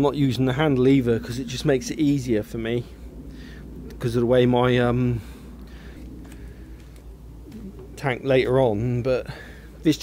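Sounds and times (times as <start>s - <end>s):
pigeon cooing: 0.0s - 9.8s
low steady hum: 0.0s - 10.0s.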